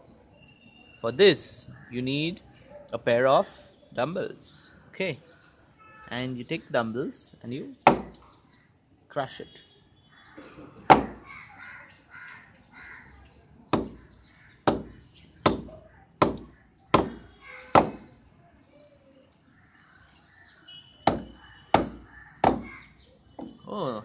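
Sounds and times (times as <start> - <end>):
dumbbell knocking on plastic: 21.1 - 22.7.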